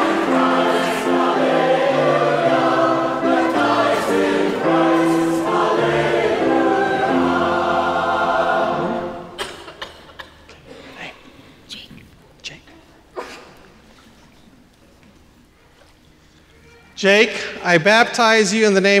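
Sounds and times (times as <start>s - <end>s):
choir singing held notes: 0.0s - 9.7s.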